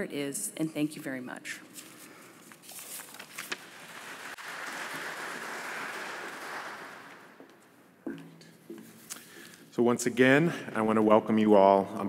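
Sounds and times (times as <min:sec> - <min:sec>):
audience applause: 0:03.5 - 0:07.5.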